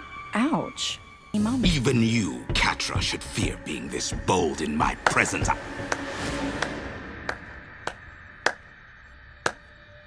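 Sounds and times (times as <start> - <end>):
faint background music: 0.0 - 10.0
sharp hand claps: 5.9 - 8.7, 9.4 - 9.7.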